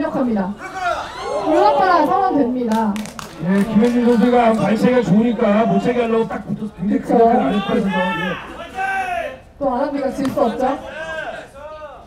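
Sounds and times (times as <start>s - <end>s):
man speaking: 3.6s - 8.8s.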